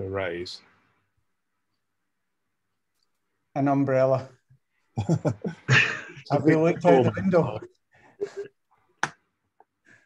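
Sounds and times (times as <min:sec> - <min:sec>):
man laughing: 0:05.0 - 0:08.5.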